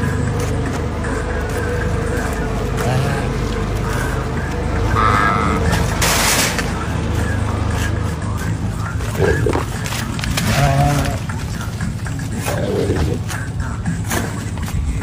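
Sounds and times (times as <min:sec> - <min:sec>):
sheep bleating: 0:02.3 - 0:04.2, 0:04.8 - 0:05.9, 0:09.0 - 0:11.7, 0:12.3 - 0:13.4.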